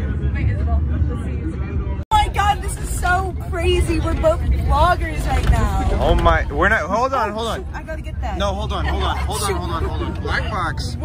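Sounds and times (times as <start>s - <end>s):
bus engine rumble: 0.0s - 11.0s
people talking: 0.0s - 11.0s.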